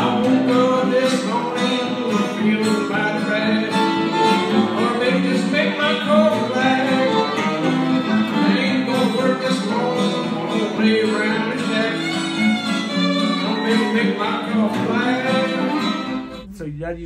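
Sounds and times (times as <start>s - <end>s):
bowed fiddle melody: 0.0s - 16.5s
strummed acoustic guitar chords: 0.0s - 17.0s.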